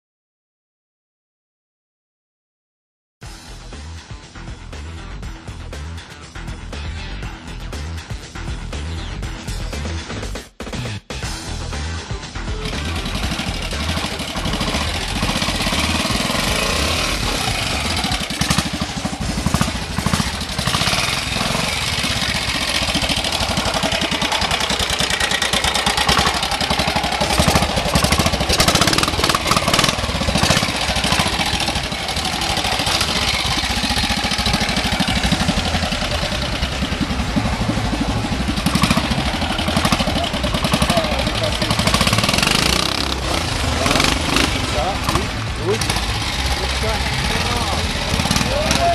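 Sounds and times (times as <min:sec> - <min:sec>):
motorcycle engine revving: 0:11.2 - 0:48.9.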